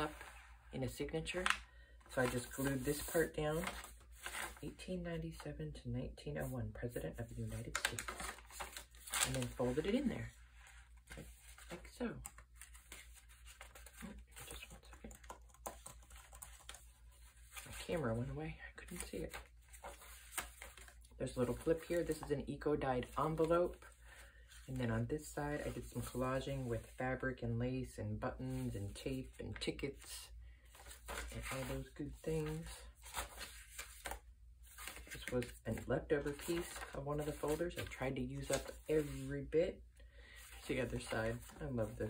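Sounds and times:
paper pages rustling: 0.0 - 5.5, 6.4 - 27.0, 28.4 - 39.6, 40.4 - 42.0.

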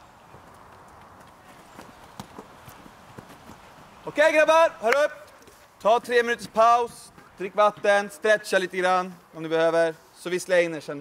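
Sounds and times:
footsteps on hard court: 0.3 - 4.0, 5.8 - 8.2.

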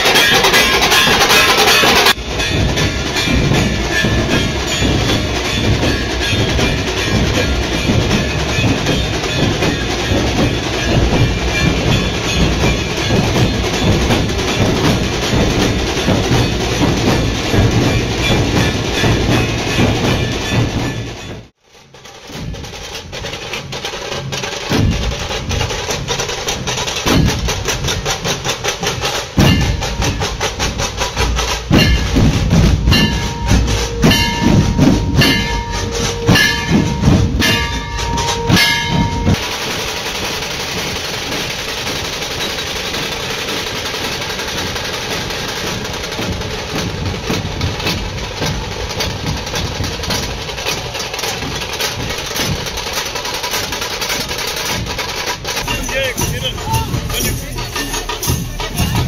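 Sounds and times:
procession drumming: 0.0 - 21.4, 22.3 - 59.0
steady noisy din: 0.0 - 59.0
long high held tone: 32.9 - 39.4.

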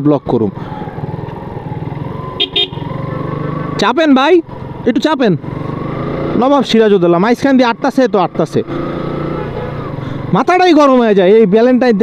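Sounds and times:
motorcycle engine running: 0.6 - 11.7
short horn beeps: 2.4 - 2.8.

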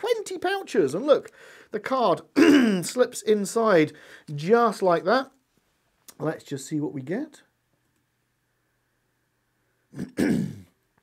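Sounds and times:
man clearing his throat: 2.4 - 2.9, 9.9 - 10.8.

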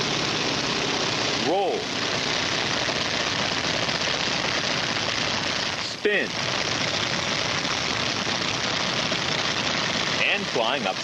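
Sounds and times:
propeller plane engine drone: 0.0 - 11.0.

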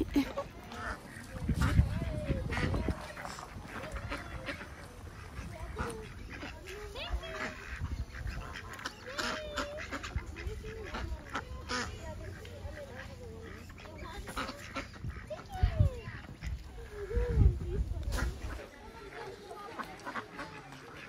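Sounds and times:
geese honking: 0.0 - 17.2, 18.2 - 21.0
ducks quacking: 0.0 - 21.0.

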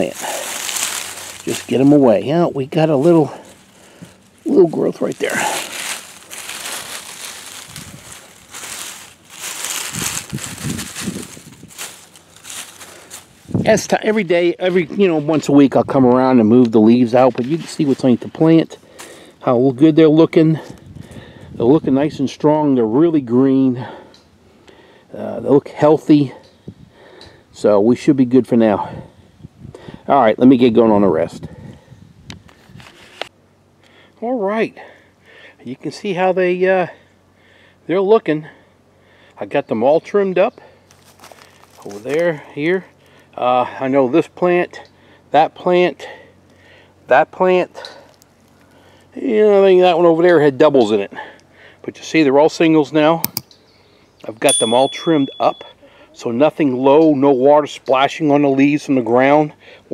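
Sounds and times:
dry leaves rustling and crunching: 0.0 - 15.6, 17.1 - 19.3, 40.8 - 42.4, 48.0 - 48.8
sharp clicks: 53.2 - 53.6.

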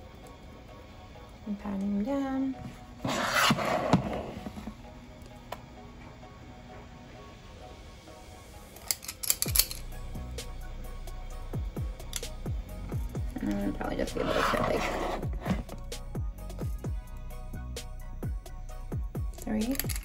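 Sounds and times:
soft background music: 0.0 - 20.0
metal scoop scraping plastic bowl: 3.0 - 4.6, 13.6 - 15.8.

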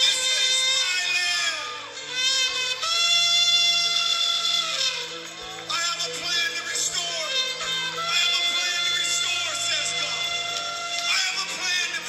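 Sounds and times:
person singing: 0.0 - 12.0.

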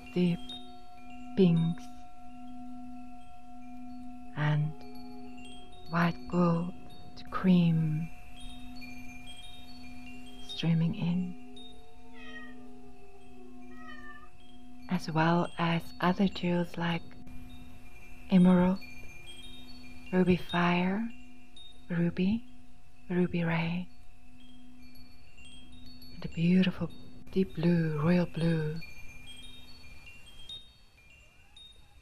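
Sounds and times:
steady low hum: 0.0 - 30.4
wind chimes ringing: 0.0 - 32.0.

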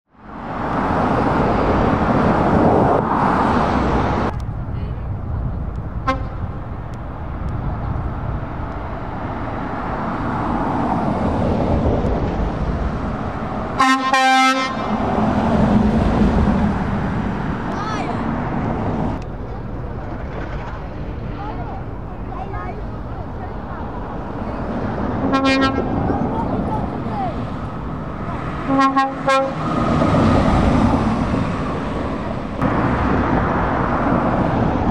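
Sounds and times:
vans driving past: 0.2 - 34.9
vehicle horn toots: 6.1 - 6.4, 13.8 - 14.8, 25.3 - 25.9, 28.6 - 29.6.

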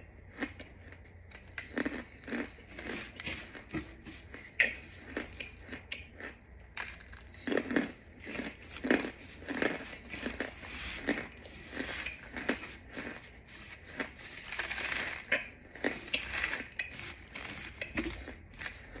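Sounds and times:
crunchy food chewing: 0.1 - 19.0
plastic crinkling: 6.8 - 19.0.

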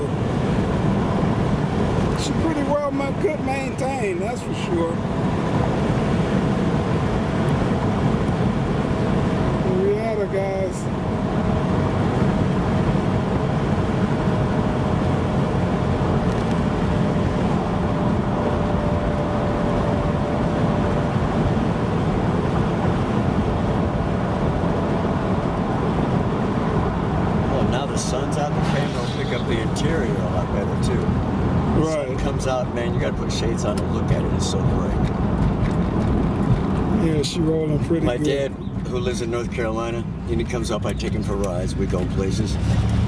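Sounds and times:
tyre and wind road noise: 0.0 - 43.0.

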